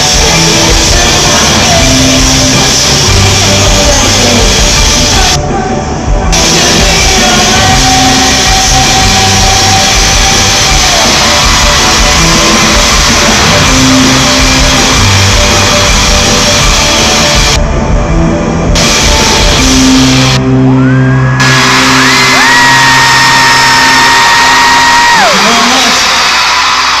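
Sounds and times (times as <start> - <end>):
fans screaming and shouting: 0.0 - 17.6, 18.8 - 27.0
live pop-rock band: 0.0 - 27.0.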